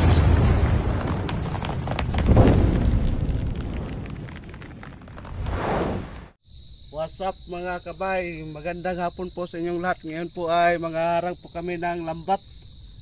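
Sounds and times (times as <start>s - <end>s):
crackling: 0.0s - 6.4s
booming explosion-like whooshes: 2.0s - 6.4s.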